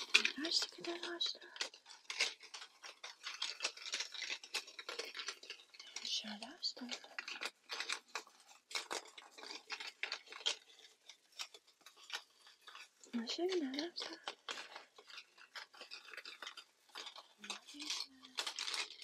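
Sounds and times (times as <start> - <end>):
mouth clicks and crackles: 0.0 - 19.0.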